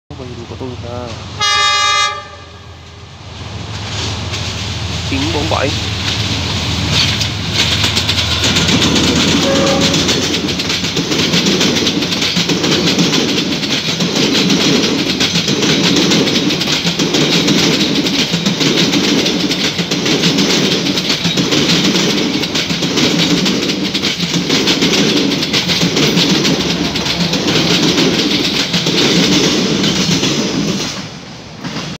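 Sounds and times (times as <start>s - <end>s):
locomotive engine hum: 0.1s - 31.7s
coaches clattering over rail joints: 3.6s - 32.0s.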